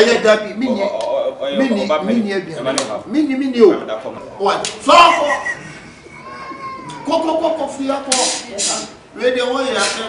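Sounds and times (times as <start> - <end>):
loud voices speaking: 0.0 - 10.0.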